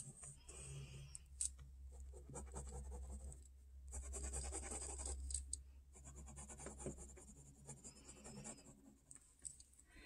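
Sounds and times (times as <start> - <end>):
low steady hum: 0.0 - 10.0
pen scratching on paper: 1.9 - 5.2, 6.0 - 9.1.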